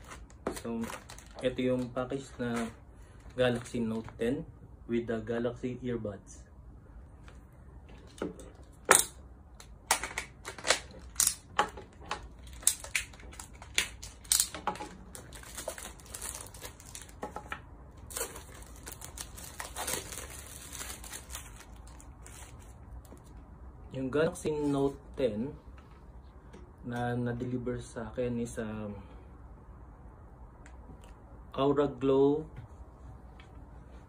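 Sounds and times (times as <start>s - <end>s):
plastic packaging crinkling and tearing: 0.0s - 4.2s, 12.3s - 23.2s.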